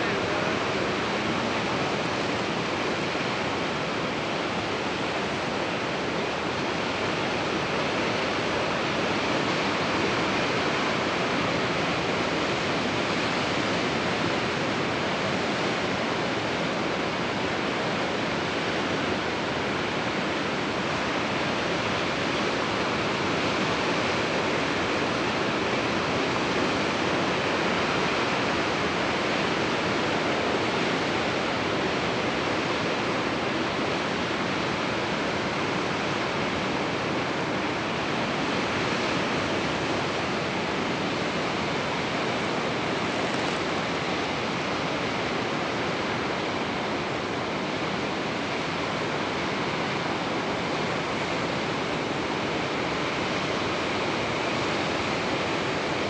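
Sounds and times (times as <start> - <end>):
ocean surf on rocks: 0.0 - 56.0.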